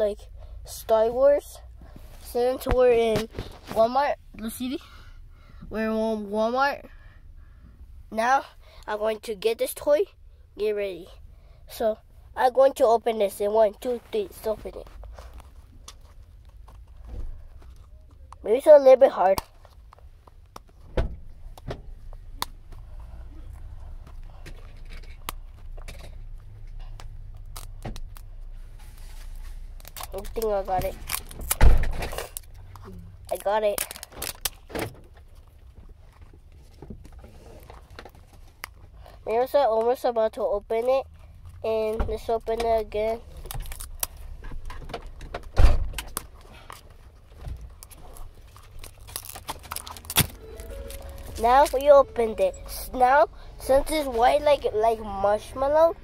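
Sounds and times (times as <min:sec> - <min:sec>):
plastic packaging clicks and crinkles: 0:29.8 - 0:35.5, 0:43.4 - 0:44.2, 0:46.0 - 0:51.8
steady low rumble: 0:47.6 - 0:56.0.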